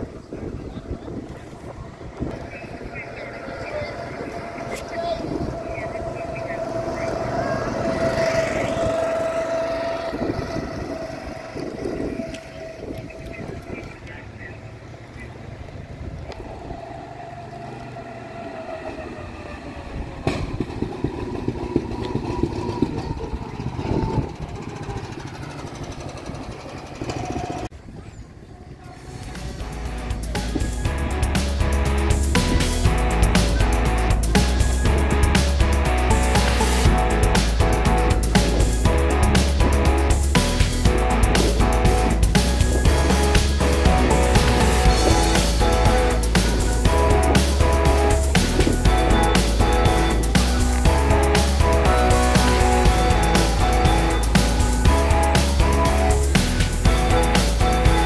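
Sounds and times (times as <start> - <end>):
go-kart engines running: 0.0 - 58.0.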